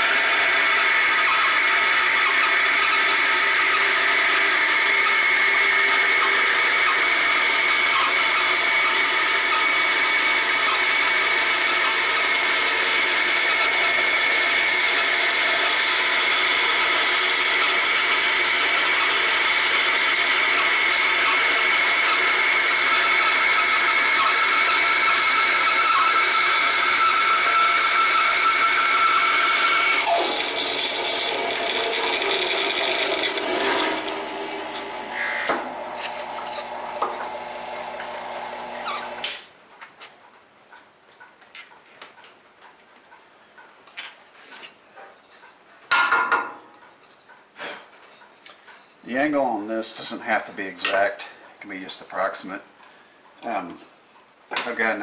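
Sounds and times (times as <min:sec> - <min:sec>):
bandsaw cutting wood: 0:00.0 - 0:39.5.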